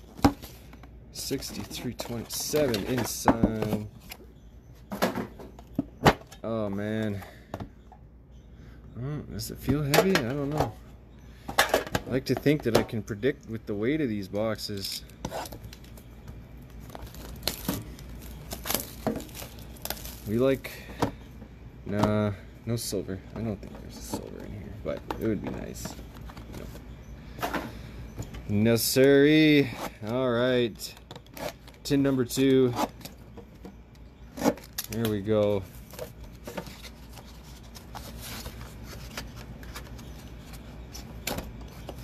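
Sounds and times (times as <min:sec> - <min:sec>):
packaging tearing and crinkling: 0:16.9 - 0:20.4.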